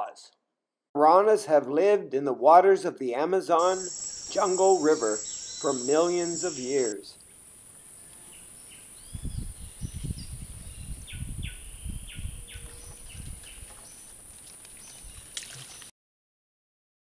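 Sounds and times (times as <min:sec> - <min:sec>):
birds chirping: 0:03.6 - 0:07.0, 0:08.0 - 0:14.1
high insect drone: 0:03.6 - 0:09.0.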